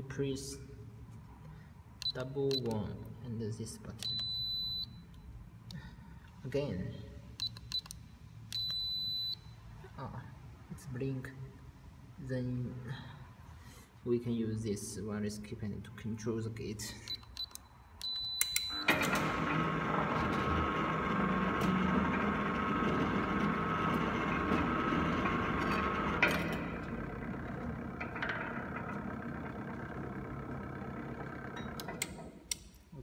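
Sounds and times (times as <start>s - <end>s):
keypad beep: 4.0s - 4.9s, 8.5s - 9.4s, 17.1s - 18.9s
gate opener clicks: 17.1s - 32.9s
gate motor whining: 18.0s - 32.7s.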